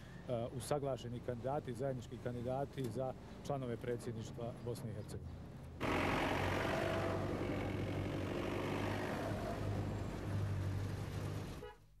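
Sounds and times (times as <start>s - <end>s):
road traffic hum: 0.0s - 11.8s.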